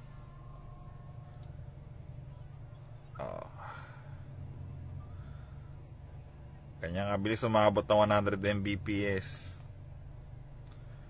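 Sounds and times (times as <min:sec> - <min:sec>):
faint steady tones: 0:00.0 - 0:11.0
low background hum: 0:00.0 - 0:11.0.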